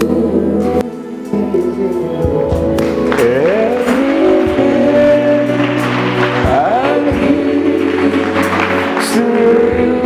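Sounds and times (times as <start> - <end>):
worship music: 0.0 - 10.0.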